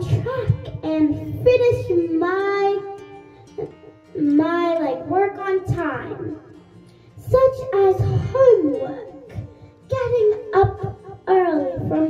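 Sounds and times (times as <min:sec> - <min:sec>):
girl singing into microphone: 0:00.0 - 0:06.6, 0:07.2 - 0:12.0.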